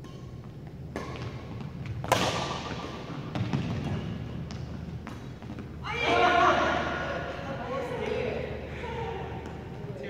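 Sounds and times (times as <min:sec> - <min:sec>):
racket hitting shuttlecock: 0:00.0 - 0:05.7.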